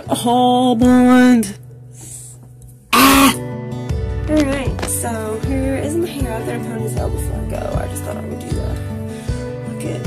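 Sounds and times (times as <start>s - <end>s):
background music: 0.0s - 10.0s
woman coughing: 2.9s - 3.4s.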